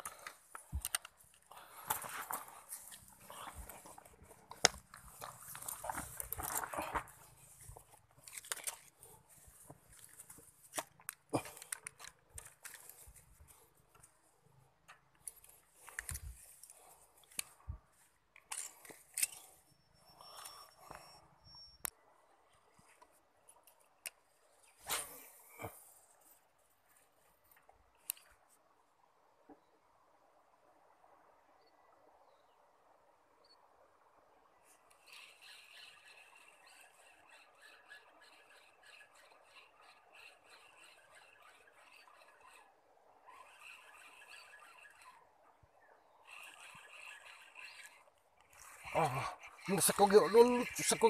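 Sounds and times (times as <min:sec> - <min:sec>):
rustling on grass: 0:01.6 - 0:10.8.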